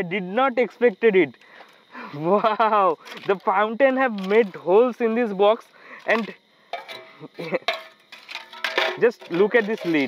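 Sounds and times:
sharp metallic clanks: 6.7s - 10.0s
metal tongs clinking on tin: 6.8s - 10.0s.

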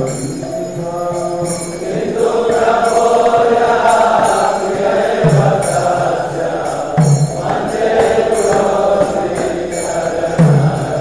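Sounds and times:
metallic percussion strokes: 0.0s - 11.0s
voices chanting to music: 0.0s - 11.0s.

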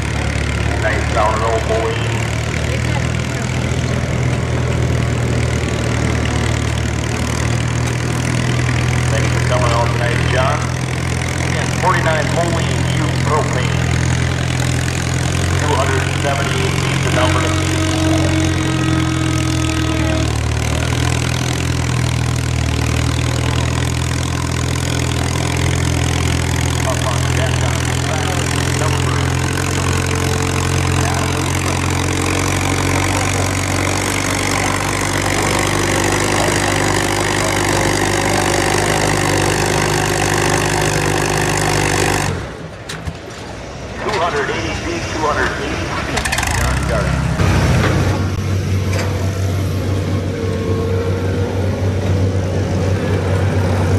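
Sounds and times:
tractor engine running under load: 0.0s - 53.9s.

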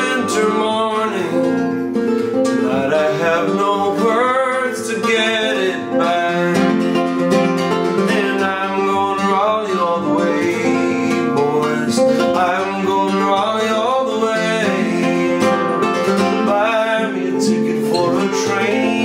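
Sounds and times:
fingerpicked acoustic guitar: 0.0s - 19.0s.

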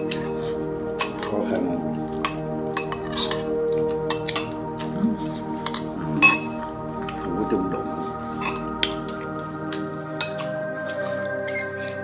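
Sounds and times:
metal spoon clinking on ceramic bowls: 0.0s - 4.8s, 5.6s - 6.7s, 8.4s - 9.1s, 10.2s - 10.6s
background music with held notes: 0.0s - 12.0s.

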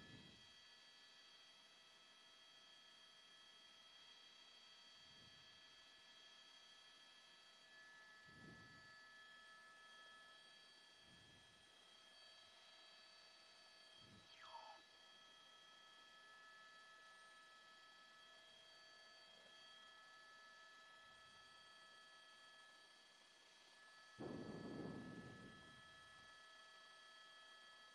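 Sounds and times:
faint electronic tones: 14.1s - 15.2s.

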